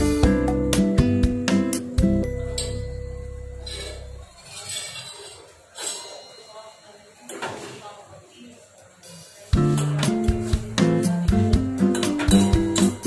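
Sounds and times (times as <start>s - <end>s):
guitar music: 0.0s - 4.3s, 9.6s - 13.0s
spoon scraping steel pot: 3.6s - 6.3s.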